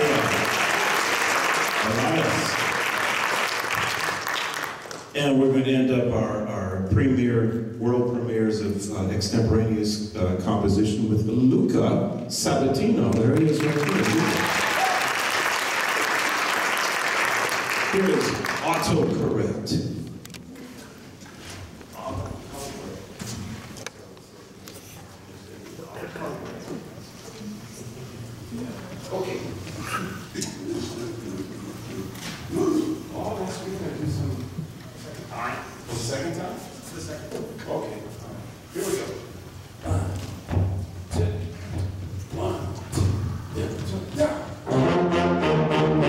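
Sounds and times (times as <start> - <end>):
hard-soled footsteps on stage: 39.9 - 44.6
jazz big band playing: 44.6 - 46.0.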